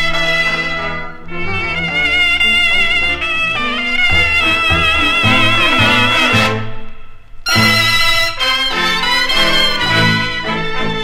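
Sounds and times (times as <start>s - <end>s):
reed and brass band playing: 0.0s - 11.0s.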